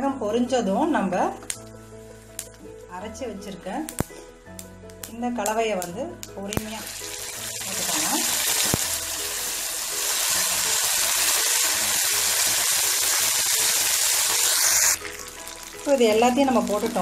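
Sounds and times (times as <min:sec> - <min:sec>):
paste sizzling in hot oil: 0:06.5 - 0:17.0.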